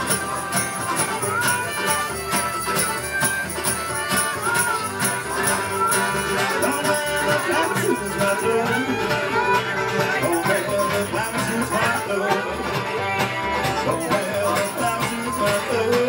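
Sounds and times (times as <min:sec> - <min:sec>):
acoustic string band playing: 0:00.0 - 0:16.0.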